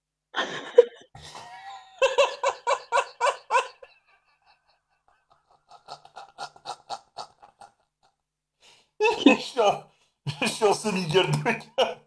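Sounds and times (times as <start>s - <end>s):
breathy laughter: 0.4s - 8.2s.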